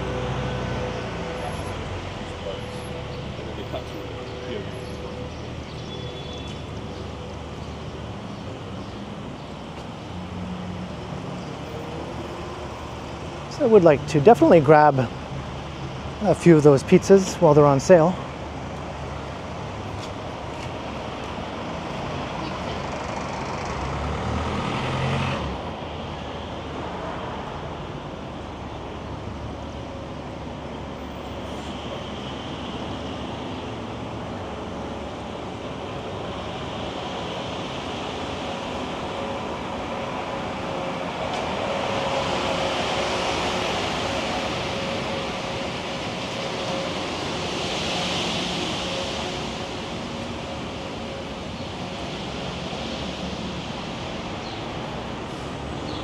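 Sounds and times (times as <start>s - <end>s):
cars and trucks passing: 0.0s - 56.0s.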